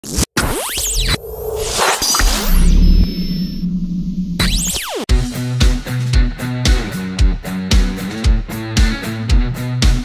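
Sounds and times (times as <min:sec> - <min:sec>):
falling synth sweeps: 0:00.5 - 0:05.1
whoosh: 0:00.8 - 0:05.1
low electronic drone: 0:01.1 - 0:05.4.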